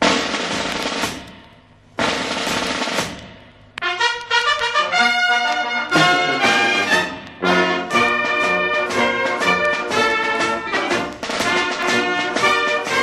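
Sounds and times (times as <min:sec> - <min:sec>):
snare drum rolls: 0:00.0 - 0:13.0
brass band playing chords: 0:03.8 - 0:13.0.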